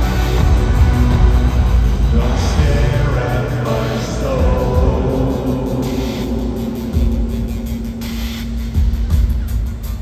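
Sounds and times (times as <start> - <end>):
deep bass swells: 0.0 - 9.4
rock band music over loudspeakers: 0.0 - 10.0.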